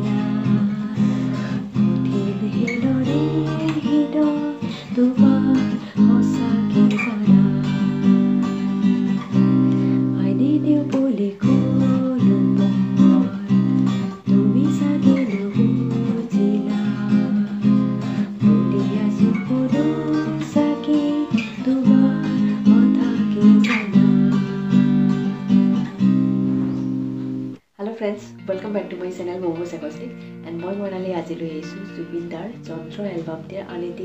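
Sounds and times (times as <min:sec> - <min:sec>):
woman singing: 0:00.0 - 0:25.7, 0:28.4 - 0:34.0
acoustic guitar strumming: 0:00.0 - 0:27.6.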